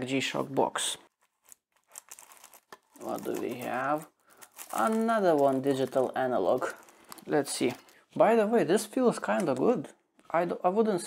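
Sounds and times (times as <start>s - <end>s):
crinkling and tearing seal: 1.1s - 8.0s.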